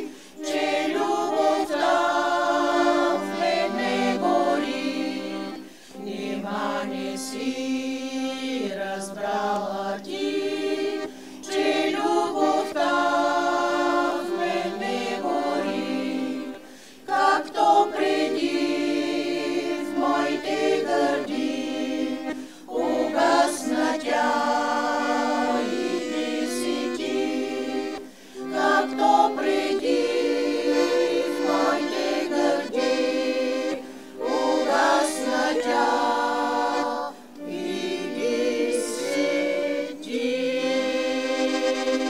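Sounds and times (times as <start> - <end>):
women singing in harmony: 0.0 - 42.0.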